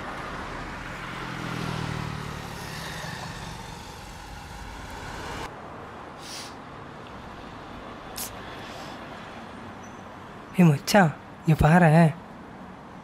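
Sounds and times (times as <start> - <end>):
vehicle engine passing: 0.0 - 5.5
quiet street ambience: 0.0 - 13.0
road traffic noise: 0.0 - 13.0.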